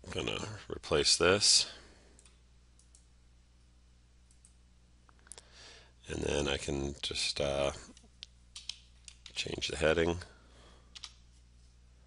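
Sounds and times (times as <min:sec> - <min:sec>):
faint computer clicks: 0:10.9 - 0:11.2.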